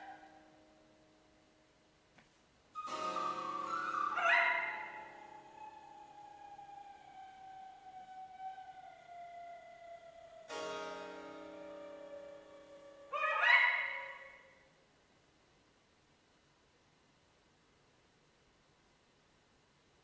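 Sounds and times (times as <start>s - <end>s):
struck chord: 2.8s - 5.8s, 10.5s - 13.3s
chamber music ensemble: 2.8s - 9.4s, 10.4s - 14.2s.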